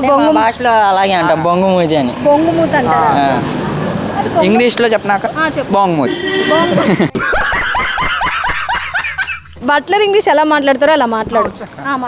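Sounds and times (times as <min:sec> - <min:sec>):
boys laughing: 0:06.4 - 0:09.7.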